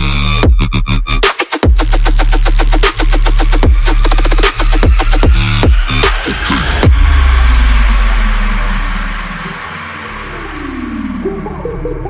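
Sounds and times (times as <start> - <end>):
dubstep music with heavy bass: 0.0 - 12.0.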